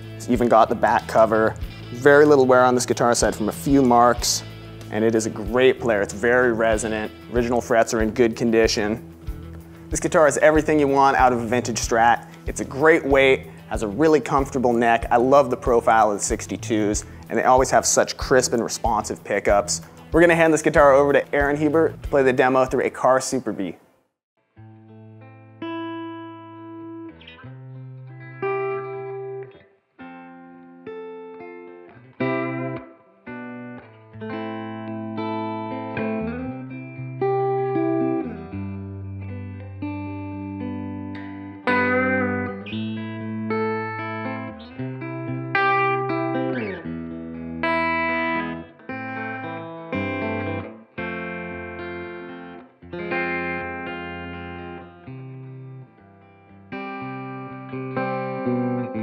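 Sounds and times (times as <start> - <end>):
electric guitar playing: 0.0 - 22.9, 24.6 - 59.0.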